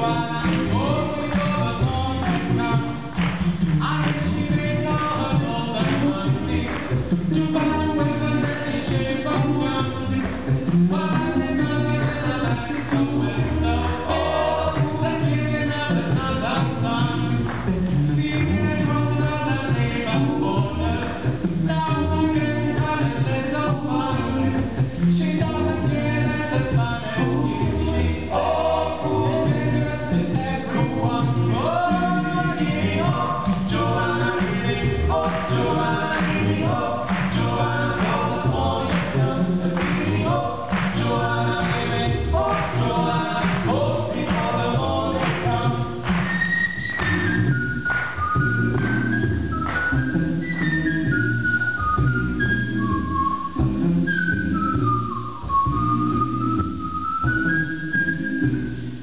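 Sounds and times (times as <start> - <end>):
male a cappella ensemble singing: 0.0 - 53.3.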